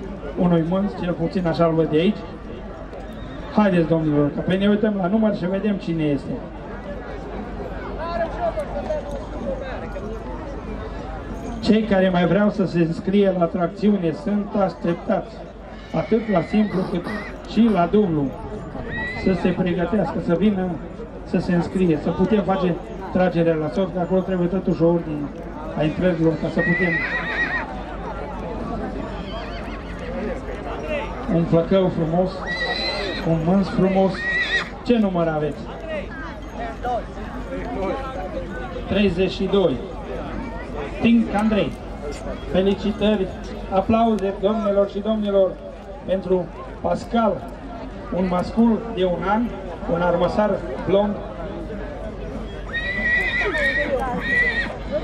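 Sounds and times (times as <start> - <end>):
crowd talking: 0.0 - 55.0
horse whinnying: 15.7 - 17.5, 18.8 - 19.4, 26.3 - 27.7, 32.4 - 33.4, 34.0 - 34.8, 52.7 - 54.8.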